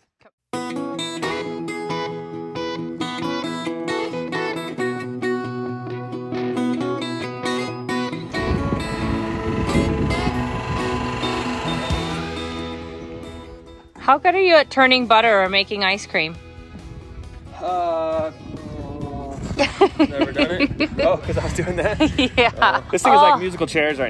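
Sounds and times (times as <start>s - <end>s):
acoustic guitar music: 0.5s - 16.6s
rough noisy rumble: 8.3s - 13.7s.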